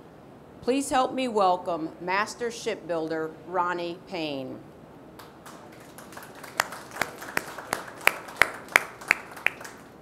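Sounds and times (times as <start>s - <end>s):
hand clapping: 5.2s - 9.9s.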